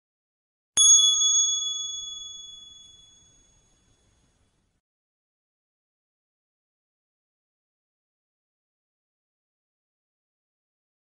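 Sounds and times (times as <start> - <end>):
high bell-like ding: 0.8 - 4.5.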